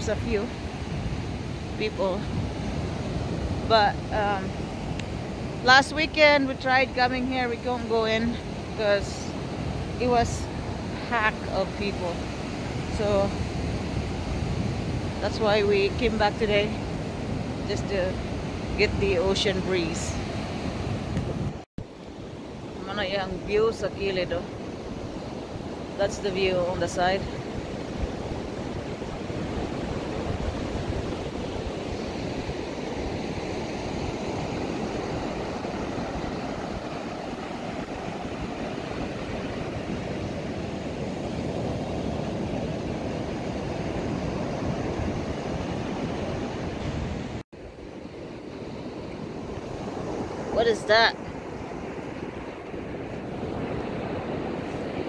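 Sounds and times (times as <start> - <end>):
ocean surf breaking on beach: 0.0 - 55.0.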